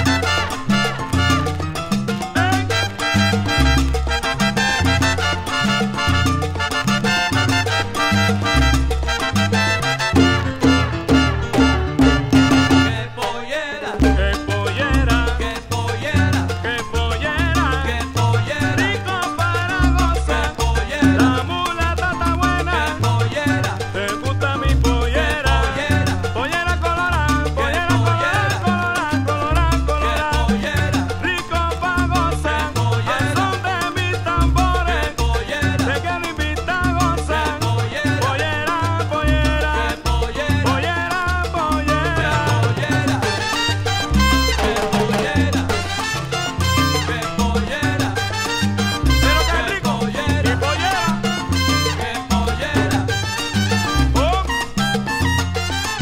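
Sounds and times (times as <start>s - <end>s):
lead melody bending in pitch: 0.0s - 1.7s, 2.6s - 13.1s, 42.3s - 47.4s, 48.2s - 50.0s, 50.6s - 52.2s, 53.0s - 56.0s
bass line: 0.0s - 56.0s
percussion: 0.0s - 56.0s
salsa band instrumental: 0.0s - 56.0s.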